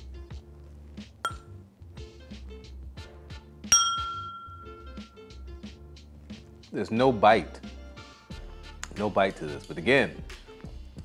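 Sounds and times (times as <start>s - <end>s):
background music with steady beat: 0.0s - 11.0s
glass clinking: 1.3s - 1.5s, 3.7s - 5.3s.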